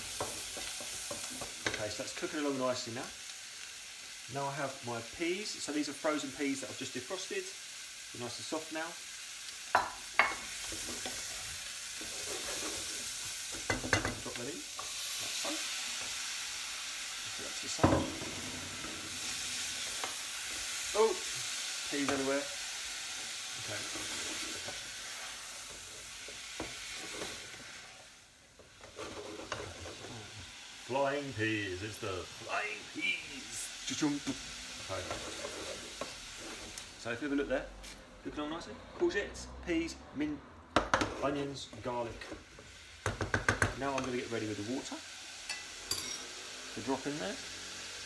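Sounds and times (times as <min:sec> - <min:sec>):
vegetables sizzling in a frying pan: 0:00.0 - 0:40.0, 0:40.8 - 0:48.0
spoon knocking against a pan: 0:43.0 - 0:43.8.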